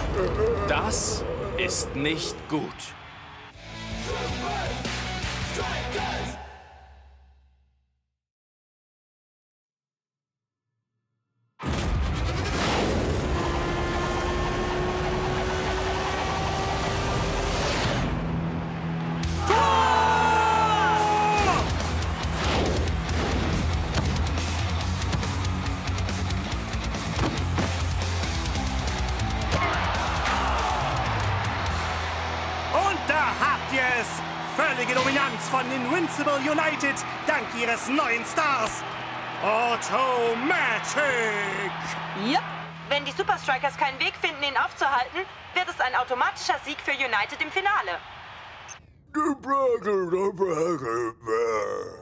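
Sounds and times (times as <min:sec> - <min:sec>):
people shouting: 0:00.0 - 0:04.9, 0:19.2 - 0:22.0, 0:29.2 - 0:38.2
stadium crowd cheering: 0:00.0 - 0:06.8, 0:13.2 - 0:51.0.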